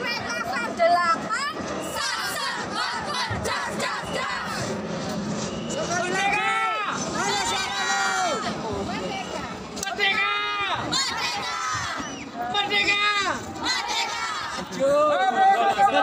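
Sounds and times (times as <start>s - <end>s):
women chanting a cheer: 1.3s - 4.7s, 7.2s - 8.5s, 10.8s - 12.2s, 13.6s - 14.7s
long drawn-out shouts: 1.9s - 4.7s, 6.2s - 8.6s, 9.9s - 16.0s.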